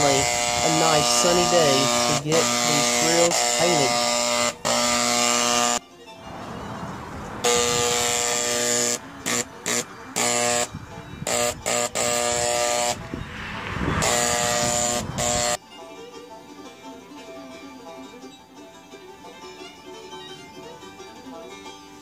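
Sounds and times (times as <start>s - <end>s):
paint sprayer buzzing: 0.0s - 5.8s, 7.2s - 15.6s
faint music: 15.6s - 22.0s.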